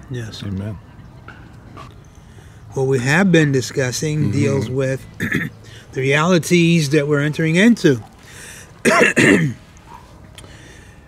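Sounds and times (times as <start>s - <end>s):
man clearing his throat: 4.2s - 5.6s, 8.8s - 9.6s.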